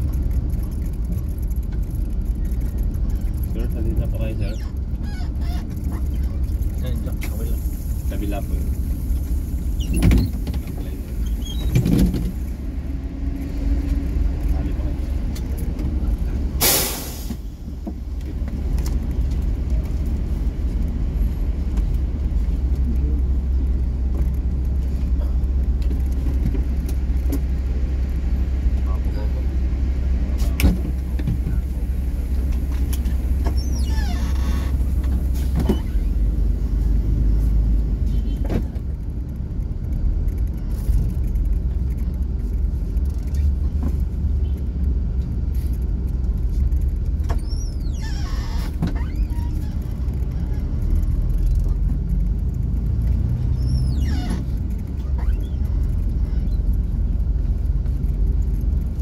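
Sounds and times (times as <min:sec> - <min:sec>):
bus engine rumble: 0:00.0 - 0:59.0.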